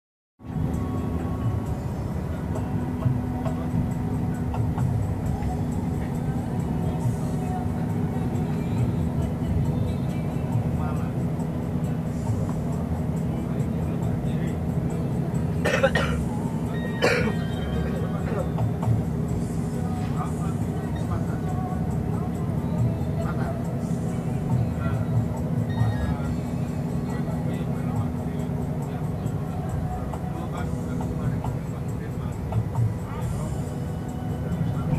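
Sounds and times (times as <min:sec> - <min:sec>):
vehicle cabin rumble: 0:00.4 - 0:34.9
person clearing throat: 0:15.6 - 0:16.2, 0:17.0 - 0:17.4.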